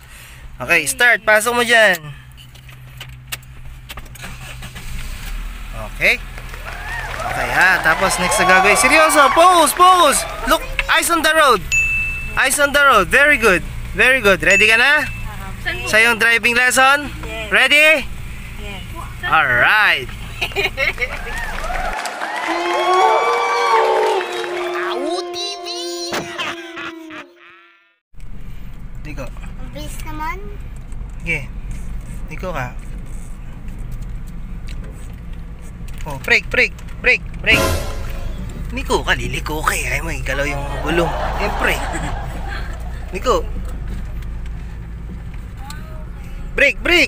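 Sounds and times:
car engine cranking and starting: 0:01.6 - 0:21.5, 0:28.2 - 0:37.5, 0:38.4 - 0:47.0
people laughing and talking: 0:20.2 - 0:21.5, 0:40.2 - 0:44.0
intro jingle with gliding tones: 0:37.5 - 0:38.6.

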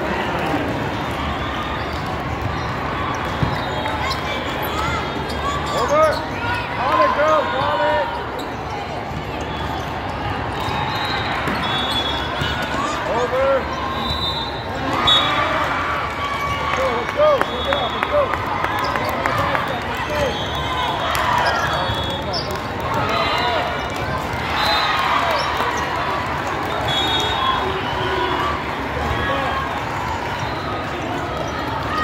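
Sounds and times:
hubbub of many voices: 0:00.0 - 0:32.0
sneakers squeaking on court: 0:01.8 - 0:06.5.

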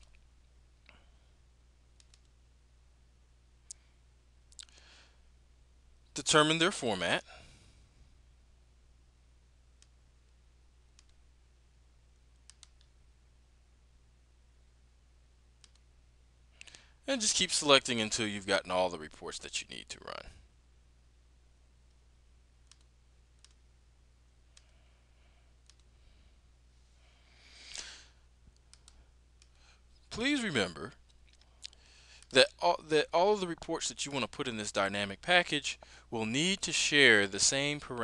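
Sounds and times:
low steady hum: 0:00.0 - 0:38.0
computer mouse clicks: 0:02.0 - 0:02.4, 0:11.0 - 0:11.2, 0:12.3 - 0:12.9, 0:15.6 - 0:15.9, 0:22.6 - 0:23.6, 0:25.6 - 0:25.9, 0:28.5 - 0:29.6.

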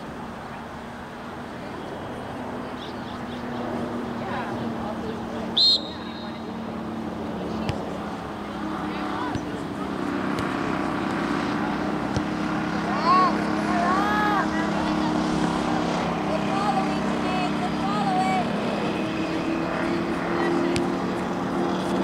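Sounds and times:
people shouting: 0:12.9 - 0:14.6.

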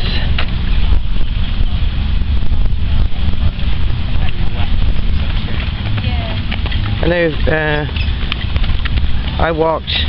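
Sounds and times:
faint voices: 0:00.0 - 0:10.0
wind buffeting microphone: 0:00.0 - 0:10.0.

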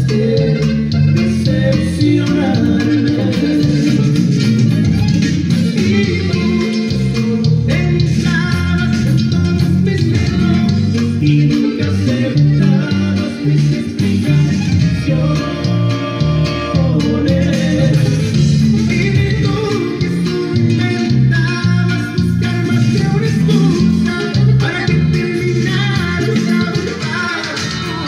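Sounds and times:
band music: 0:00.0 - 0:28.0
electric bass playing: 0:00.0 - 0:28.0
recorded song with singing: 0:00.0 - 0:28.0.

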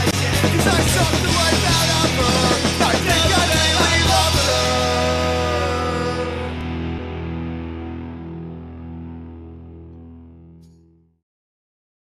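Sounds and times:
distorted guitar and bass chord: 0:00.0 - 0:11.1.

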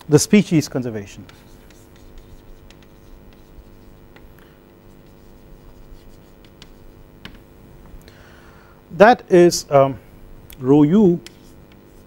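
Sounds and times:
chalk writing on a blackboard: 0:01.1 - 0:07.1, 0:11.2 - 0:12.0.

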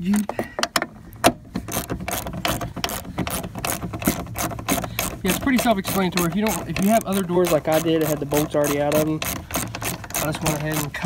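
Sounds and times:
hand ratchet clicking: 0:01.6 - 0:11.0.

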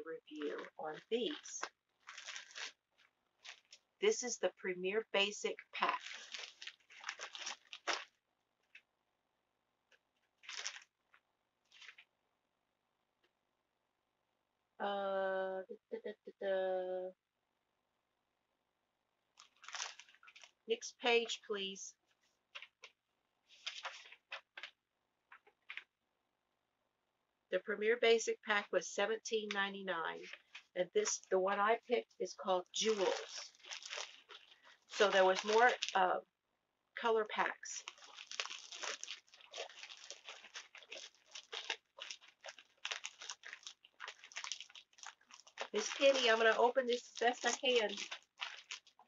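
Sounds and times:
paper rustling and crinkling: 0:00.3 - 0:03.8, 0:05.8 - 0:08.2, 0:10.2 - 0:12.1, 0:19.4 - 0:20.6, 0:22.5 - 0:25.9, 0:30.2 - 0:31.3, 0:32.8 - 0:36.0, 0:37.8 - 0:49.0.

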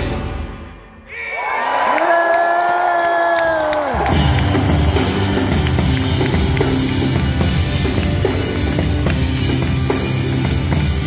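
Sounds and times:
crowd cheering and clapping: 0:01.1 - 0:11.0
live rock band: 0:03.9 - 0:11.0.

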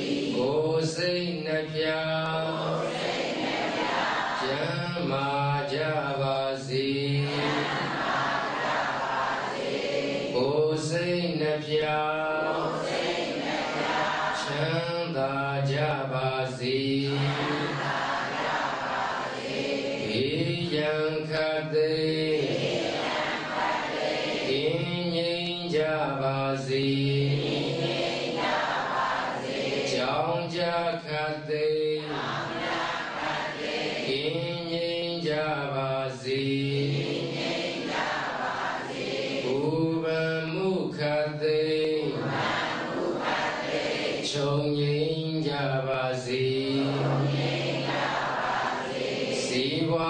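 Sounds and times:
monk chanting: 0:00.0 - 0:03.8, 0:04.4 - 0:09.5, 0:10.3 - 0:50.0.

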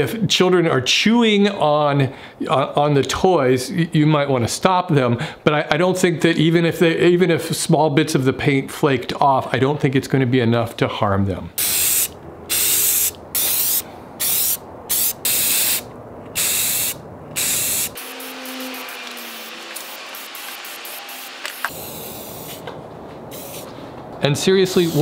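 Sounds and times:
spray-paint can hissing: 0:11.6 - 0:15.8, 0:16.4 - 0:22.7, 0:23.3 - 0:23.7, 0:24.8 - 0:25.0.

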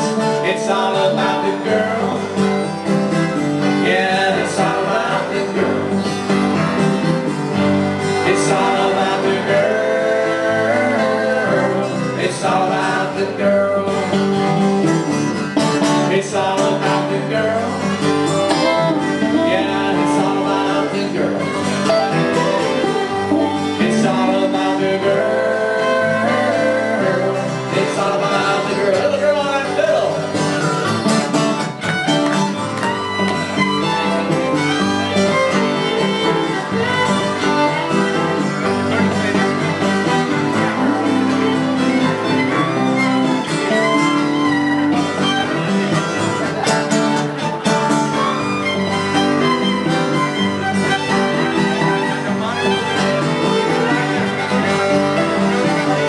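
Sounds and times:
acoustic rock band playing: 0:00.0 - 0:56.0
fiddle melody: 0:00.0 - 0:56.0.

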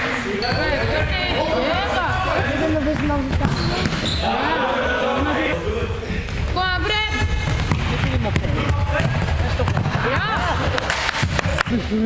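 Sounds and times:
players shouting and calling: 0:00.0 - 0:11.9
ball bouncing on hall floor: 0:00.4 - 0:04.2, 0:06.2 - 0:11.9.

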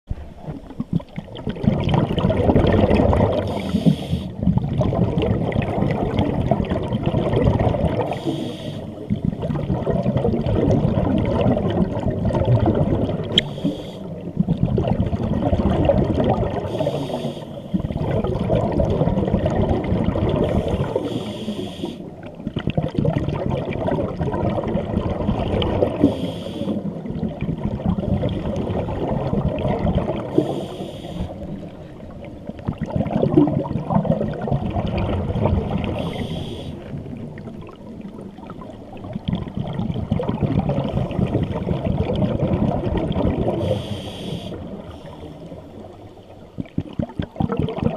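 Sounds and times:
underwater regulator bubbling breath: 0:00.4 - 0:47.9.

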